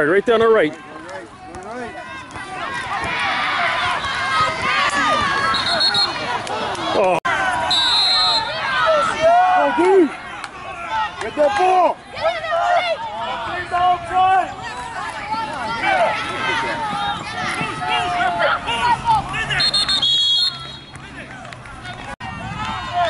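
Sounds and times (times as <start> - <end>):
spectators shouting and cheering: 0.0 - 23.0.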